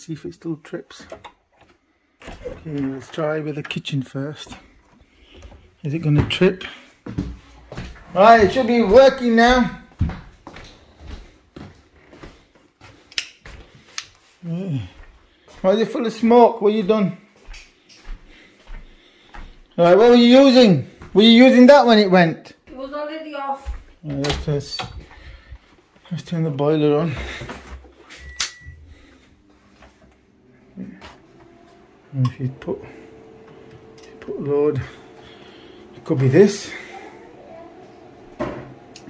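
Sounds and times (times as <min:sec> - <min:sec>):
footsteps on tiled floor: 0:04.4 - 0:20.0, 0:20.9 - 0:21.2, 0:22.6 - 0:24.2, 0:25.0 - 0:28.1, 0:28.9 - 0:32.0
short high beep: 0:28.1 - 0:28.8.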